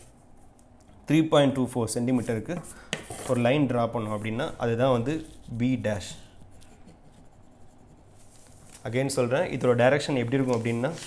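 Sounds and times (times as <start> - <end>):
pen scratching on paper: 4.3 - 8.5.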